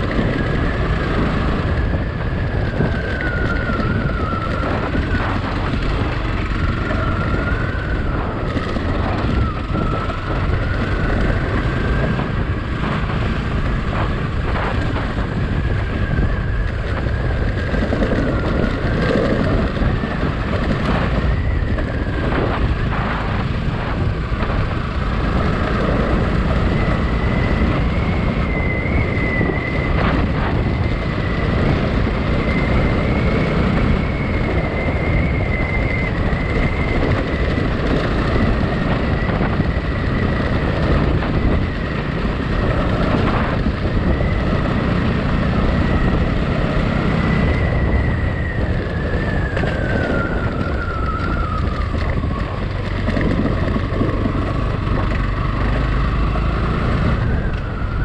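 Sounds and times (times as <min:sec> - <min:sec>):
motorcycle engine running: 0:00.0 - 0:58.0
wind buffeting microphone: 0:00.0 - 0:58.0.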